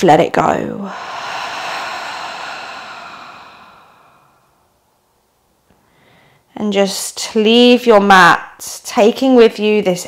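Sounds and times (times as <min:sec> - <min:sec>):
woman sighing: 0:00.8 - 0:04.7.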